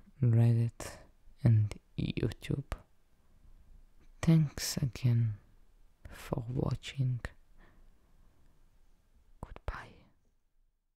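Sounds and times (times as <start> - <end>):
soft whisper: 0.0 - 2.9, 4.0 - 7.7, 9.4 - 10.3.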